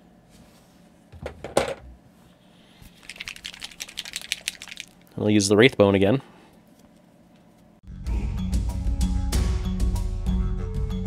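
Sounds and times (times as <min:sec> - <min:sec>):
dropper bottle rattling: 0:03.0 - 0:05.1.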